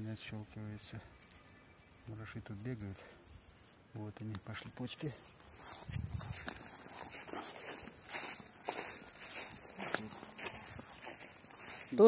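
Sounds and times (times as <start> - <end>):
footsteps on grass and soil: 1.1 - 12.0.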